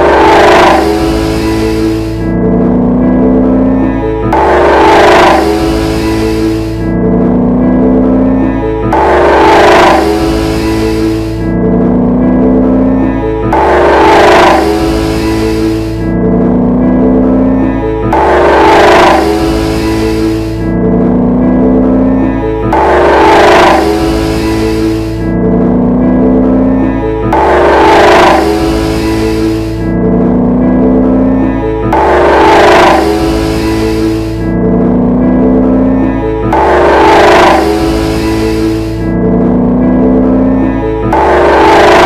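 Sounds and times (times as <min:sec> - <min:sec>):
sustained pitched notes: 0:00.0 - 0:42.0.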